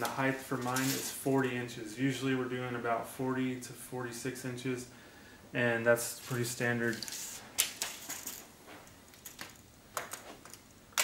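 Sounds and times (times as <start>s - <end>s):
tape measure clicking and rattling: 0.0s - 1.2s, 6.3s - 8.5s.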